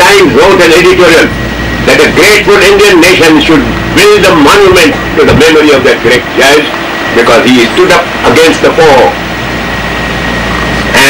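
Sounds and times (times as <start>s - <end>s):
faint high whine: 0.0s - 11.0s
low hum: 0.0s - 11.0s
steady rushing background noise: 0.0s - 11.0s.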